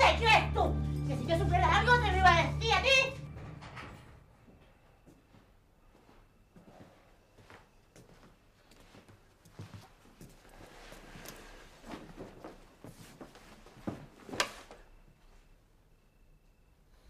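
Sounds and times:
footsteps on hard floor: 0:04.4 - 0:14.4
clothing rustle: 0:08.8 - 0:15.0.

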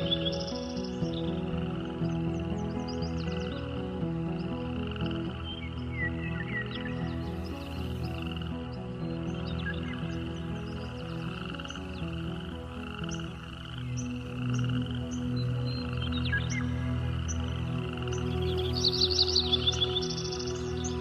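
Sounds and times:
soft sustained music chords: 0:00.0 - 0:21.0.

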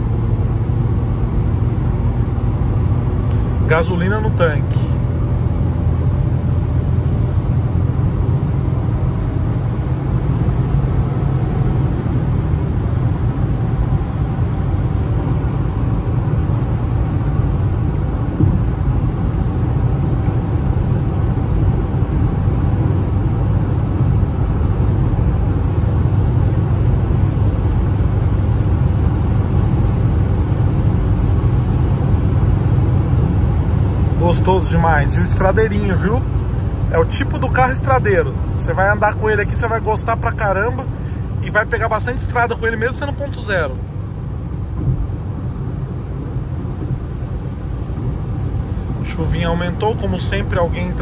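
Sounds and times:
car engine and tyre noise: 0:00.0 - 0:51.0.

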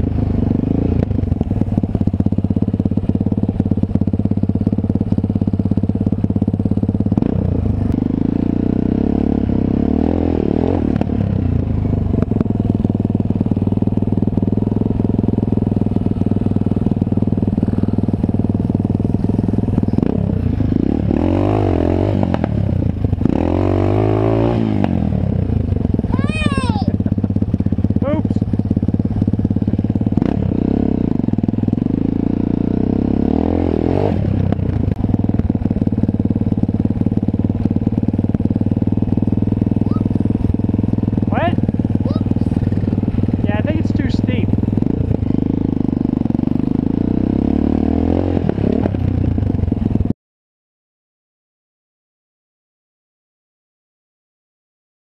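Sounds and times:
dirt bike engine revving: 0:00.0 - 0:50.1.

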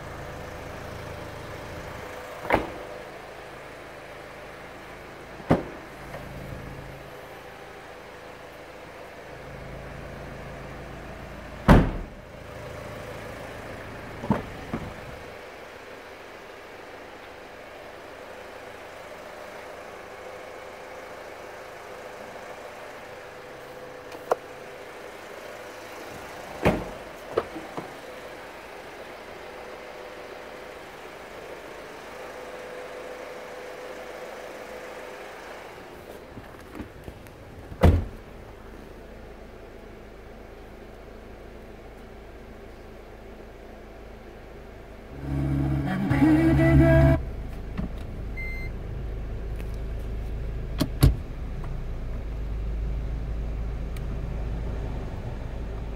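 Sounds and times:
car doors thudding shut: 0:02.4 - 0:02.9, 0:05.4 - 0:06.3, 0:11.6 - 0:12.2, 0:14.2 - 0:15.2, 0:26.6 - 0:28.0, 0:37.7 - 0:38.3, 0:50.8 - 0:51.2
low hum: 0:45.1 - 0:47.6.

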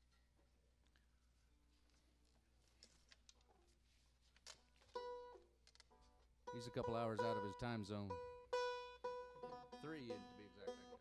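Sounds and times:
plucked string note: 0:06.5 - 0:11.0.

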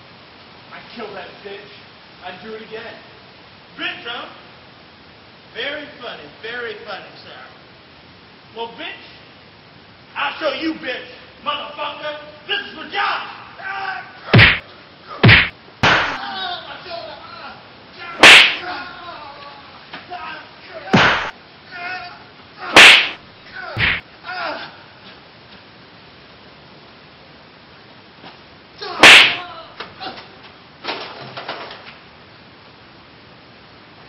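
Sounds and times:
loud whacks of blows: 0:14.3 - 0:14.6, 0:15.2 - 0:16.2, 0:18.2 - 0:18.6, 0:20.9 - 0:21.4, 0:22.7 - 0:23.2, 0:23.8 - 0:24.0, 0:29.0 - 0:29.4
very loud distorted crack: 0:14.4 - 0:14.6, 0:15.2 - 0:16.2, 0:18.2 - 0:18.7, 0:21.0 - 0:21.4, 0:22.8 - 0:23.2, 0:23.8 - 0:24.1, 0:29.0 - 0:29.4.

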